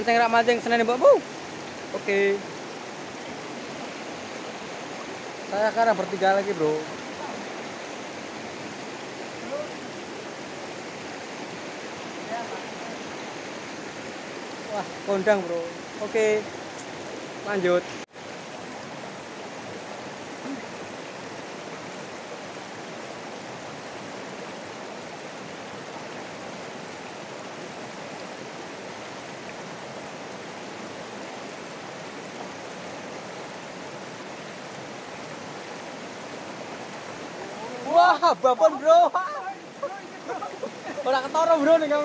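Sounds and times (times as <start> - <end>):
river rushing over rocks: 0.0 - 42.0.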